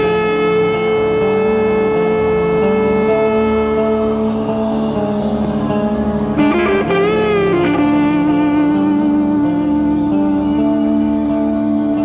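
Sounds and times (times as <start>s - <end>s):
bass notes: 0.0s - 12.0s
distorted electric guitar note: 0.0s - 12.0s.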